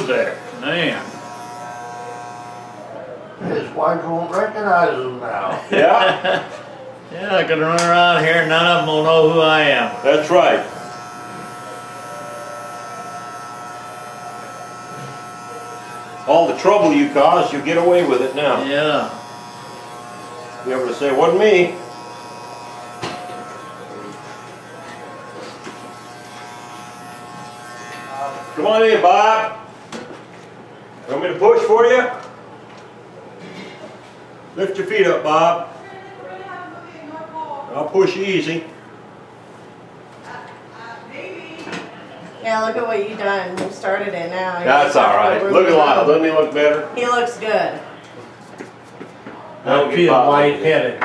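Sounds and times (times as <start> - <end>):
electric hair clipper buzzing: 0.0 - 3.0, 7.8 - 29.6.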